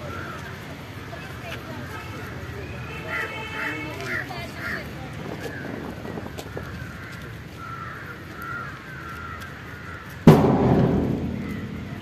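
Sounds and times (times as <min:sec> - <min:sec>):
loud crash: 0:10.3 - 0:12.0.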